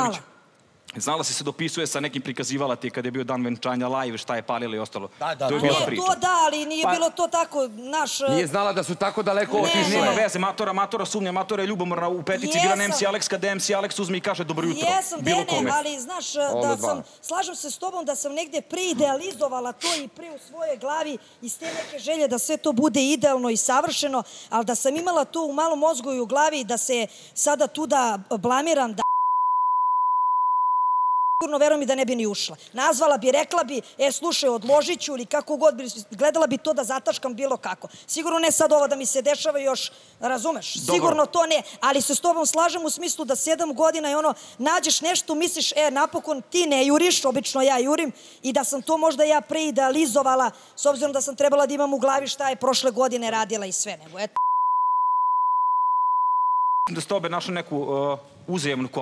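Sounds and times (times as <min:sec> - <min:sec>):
people talking: 0:08.2 - 0:10.6, 0:12.4 - 0:13.2, 0:14.6 - 0:17.0, 0:40.8 - 0:41.4
person speaking: 0:09.3 - 0:10.6, 0:12.3 - 0:13.2, 0:14.6 - 0:22.5, 0:40.4 - 0:42.0
censor bleep tone: 0:29.0 - 0:31.6, 0:54.4 - 0:56.9.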